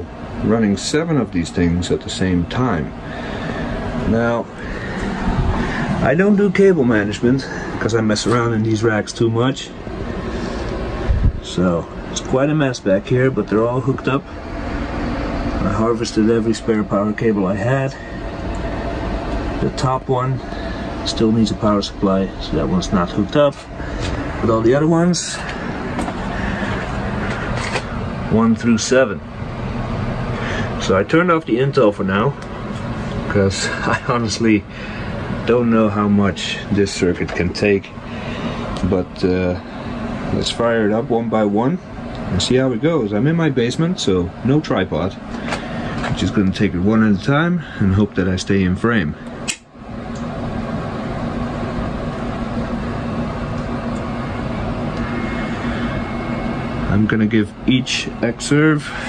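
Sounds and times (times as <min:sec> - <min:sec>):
machine hum and whir: 0:00.0 - 0:59.0.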